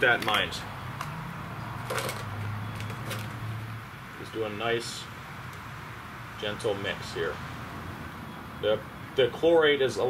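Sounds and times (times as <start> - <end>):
granules rattling in plastic tub: 1.9 - 2.3.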